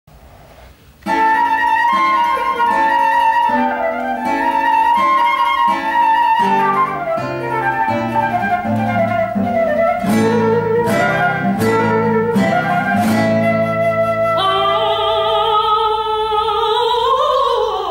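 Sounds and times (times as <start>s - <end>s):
classical guitar plucking: 1.0s - 15.6s
flute melody: 1.0s - 15.8s.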